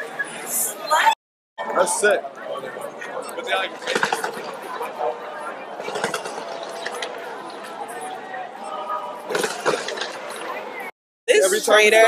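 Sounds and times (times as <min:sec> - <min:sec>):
crowd chattering: 0:00.0 - 0:12.0.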